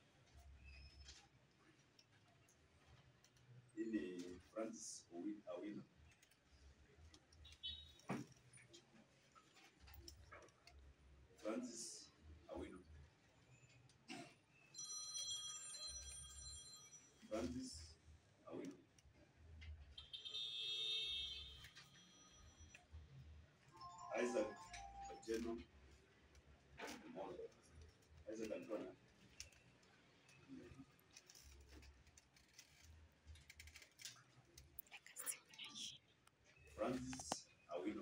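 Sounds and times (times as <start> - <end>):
faint clicks and rustles: 0.0 - 4.6, 5.9 - 11.5, 24.7 - 37.6
electronic ringing tone: 14.8 - 17.1.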